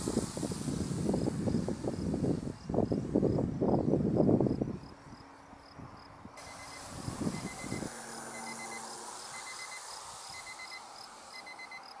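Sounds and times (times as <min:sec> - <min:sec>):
wind buffeting microphone: 0:00.0 - 0:08.4
insects chirping: 0:00.0 - 0:12.0
short high beeps: 0:06.4 - 0:09.8, 0:10.4 - 0:11.9.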